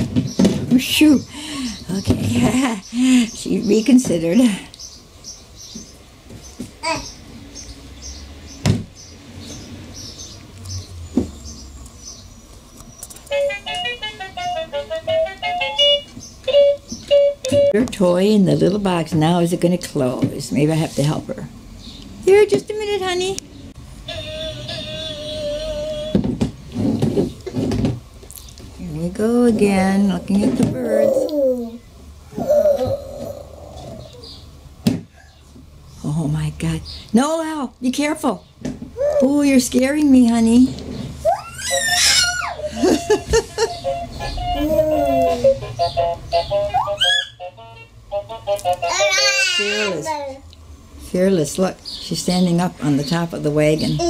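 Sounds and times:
baby vocalizing: 6.8 - 7.1, 24.1 - 26.1, 30.8 - 34.2, 44.4 - 45.6
bird chirping short high calls: 45.4 - 47.4.

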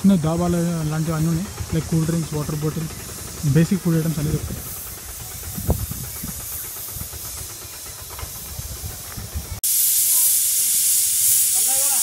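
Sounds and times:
stove burner hissing: 0.0 - 12.0.

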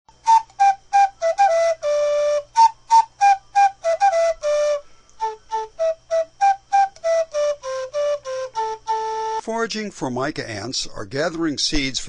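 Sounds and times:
breathy flute-like melody: 0.1 - 9.5.

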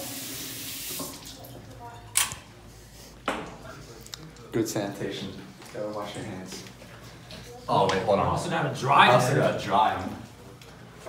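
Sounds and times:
tap water running into sink: 0.0 - 1.6.

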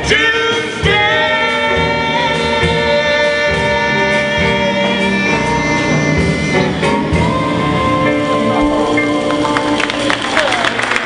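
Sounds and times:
man and woman singing jazz duet: 0.0 - 10.9.

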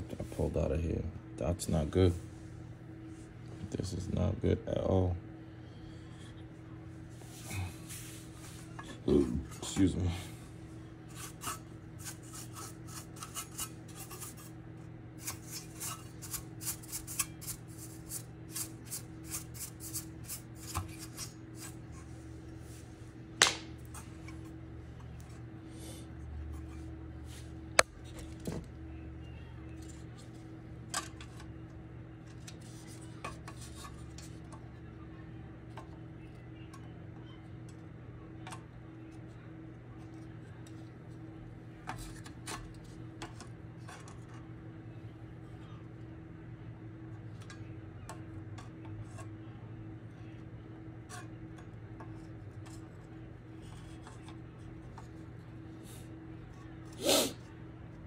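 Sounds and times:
steady low hum: 0.0 - 58.0
rubbing and scratching: 11.0 - 14.6, 15.2 - 22.8, 32.4 - 34.4.

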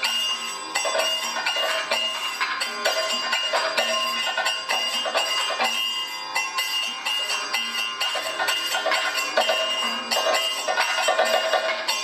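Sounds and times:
cymbals and gong ringing: 0.0 - 12.0
metallic percussion strikes: 0.0 - 12.0.

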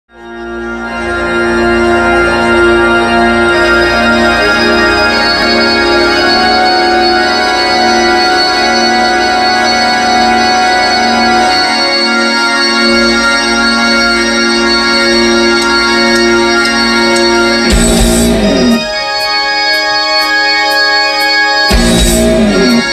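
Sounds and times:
electric organ sustained chords: 0.1 - 22.9.

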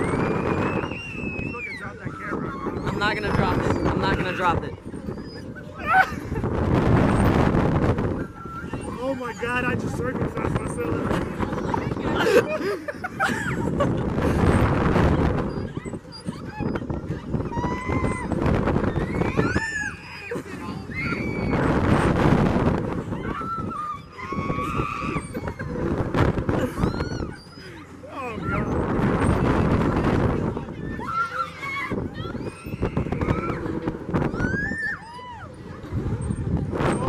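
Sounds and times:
riders screaming and shouting: 0.0 - 6.3, 14.3 - 22.2, 22.8 - 37.0
wind on microphone: 0.0 - 27.6, 28.4 - 37.0
riders screaming: 23.2 - 25.7, 30.8 - 35.6.

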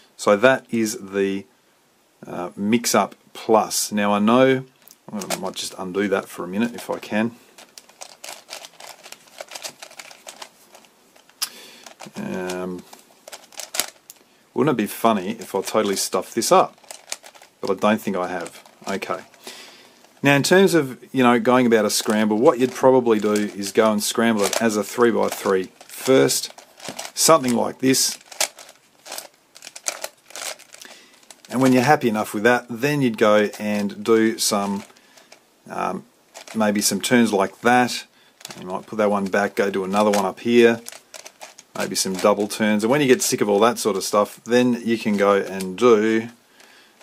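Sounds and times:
puzzle cube clicking: 7.6 - 12.6, 13.2 - 14.2, 16.6 - 19.4, 22.0 - 31.5.

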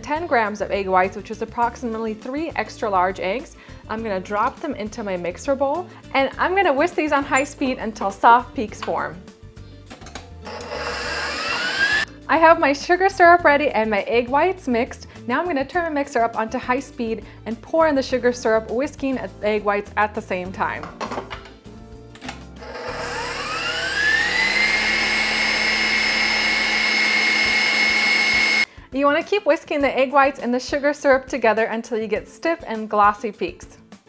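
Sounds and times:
stand mixer motor whine: 10.4 - 12.1, 22.6 - 28.7.

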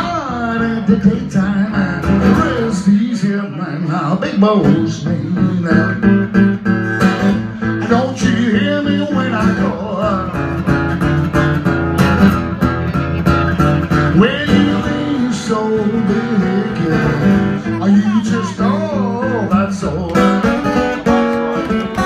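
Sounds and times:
acoustic guitar playing blues: 0.0 - 22.0.

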